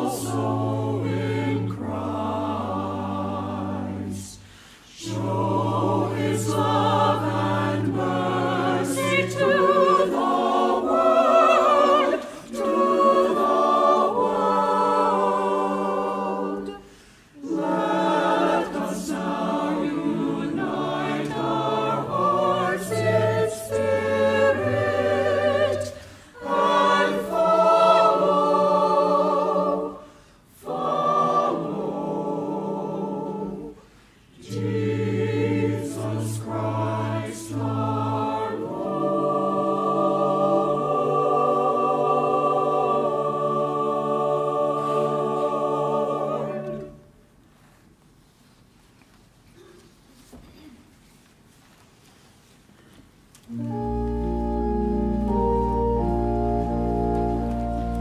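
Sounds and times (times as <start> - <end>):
church choir singing: 0.0 - 47.3, 53.4 - 58.0.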